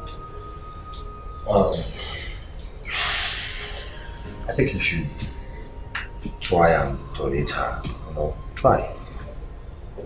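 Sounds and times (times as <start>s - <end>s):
man breathing: 1.9s - 4.4s.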